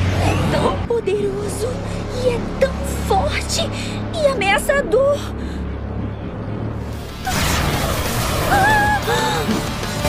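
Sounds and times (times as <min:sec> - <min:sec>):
background music: 0:00.0 - 0:10.0
low drone: 0:00.0 - 0:10.0.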